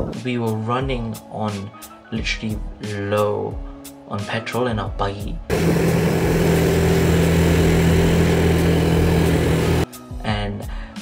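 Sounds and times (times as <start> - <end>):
quad bike engine running: 5.5 - 9.8
road noise: 5.5 - 9.8.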